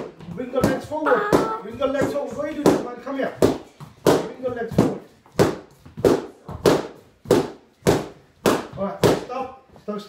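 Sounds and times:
training sticks striking pads: 0:00.0 - 0:09.5.

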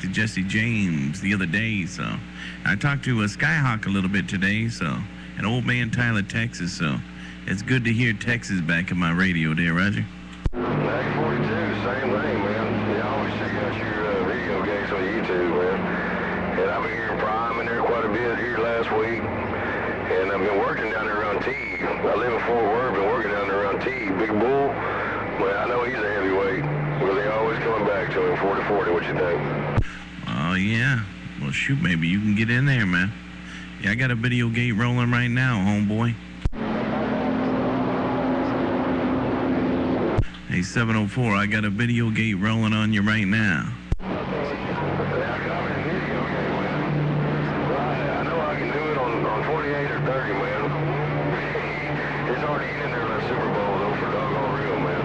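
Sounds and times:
low humming tones: 0:00.0 - 0:55.0
radio static: 0:00.0 - 0:55.0.

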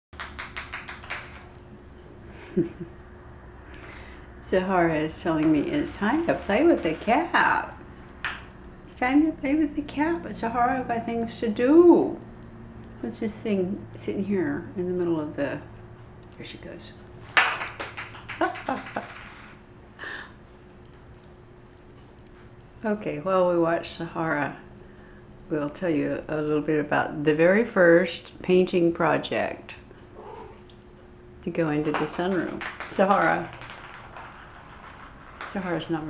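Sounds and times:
ball bouncing on tile floor: 0:00.2 - 0:01.7, 0:05.2 - 0:08.5, 0:17.3 - 0:19.6, 0:31.7 - 0:36.0.

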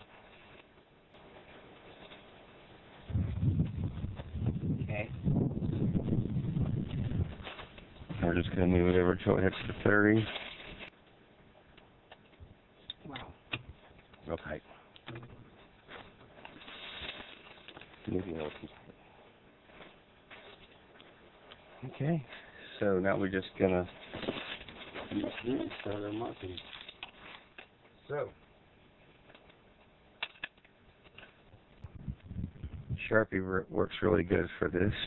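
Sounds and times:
rustling and scuffing: 0:00.0 - 0:04.6, 0:06.4 - 0:11.0, 0:15.4 - 0:27.9.

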